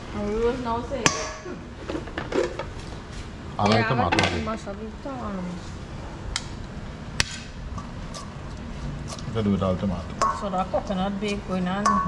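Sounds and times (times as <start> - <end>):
utensil clinking against metal bowl: 10.1 - 12.0.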